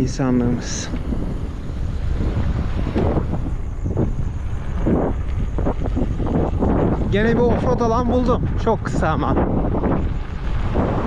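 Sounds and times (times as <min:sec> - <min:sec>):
tyres rumbling on dirt track: 0:00.0 - 0:11.0
wind buffeting microphone: 0:00.0 - 0:11.0.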